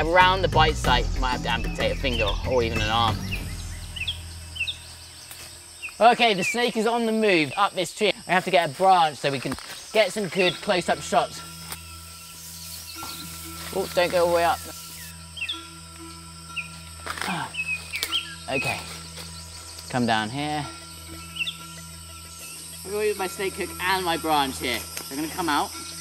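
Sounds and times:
low background music drone: 0.0s - 7.5s, 10.0s - 26.0s
bird chirping: 0.0s - 8.3s, 9.6s - 26.0s
rainforest ambience: 0.0s - 26.0s.

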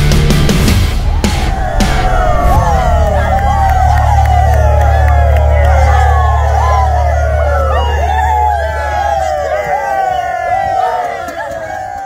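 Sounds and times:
men shouting and cheering: 0.6s - 12.0s.

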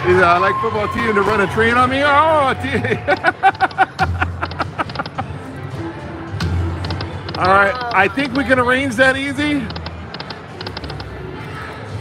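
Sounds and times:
slot machine music: 3.0s - 11.0s
quick electronic ticks: 9.6s - 11.1s.

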